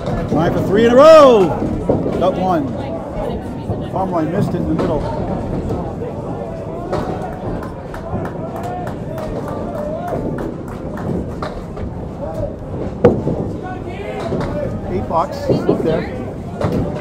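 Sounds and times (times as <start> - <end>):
echoing voices and chatter: 0.0 - 17.0.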